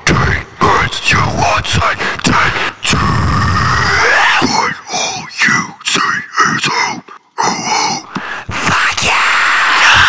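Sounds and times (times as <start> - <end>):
unaccompanied metalcore vocals: 0.0 - 10.0.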